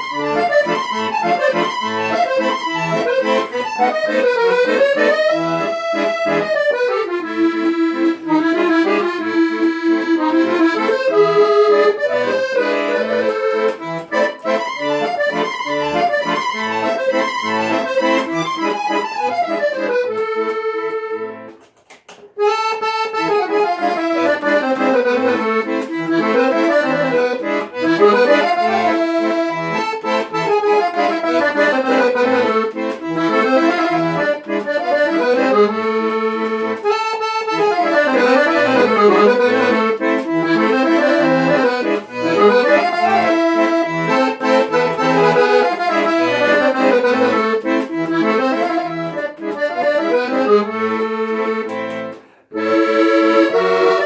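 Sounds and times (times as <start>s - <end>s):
accordion playing a waltz: 0.0s - 54.0s.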